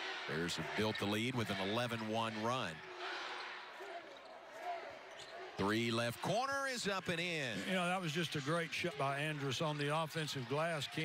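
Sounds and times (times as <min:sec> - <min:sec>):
crowd murmur in large hall: 0:00.0 - 0:11.0.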